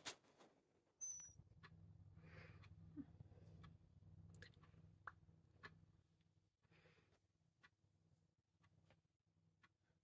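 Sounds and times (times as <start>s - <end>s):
low steady hum: 0.2s - 10.0s
faint high squeak: 1.0s - 1.4s
soft breath: 6.6s - 7.3s.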